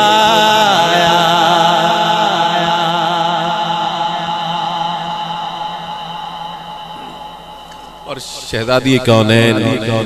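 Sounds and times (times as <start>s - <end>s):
sustained chanted vocal note: 0.0s - 10.0s.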